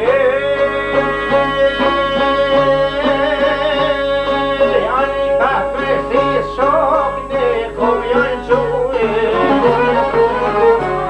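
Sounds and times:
man singing folk song: 0:00.0 - 0:11.0.

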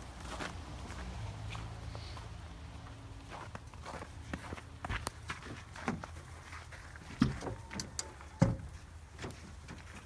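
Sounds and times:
footsteps on snow: 0:00.0 - 0:07.2.

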